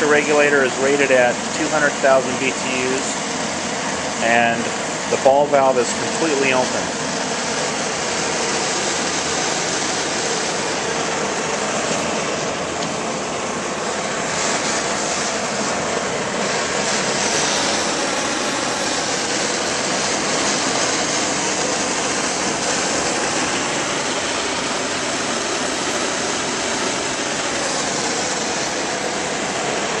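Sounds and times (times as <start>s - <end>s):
gas burner rushing: 0.0s - 30.0s.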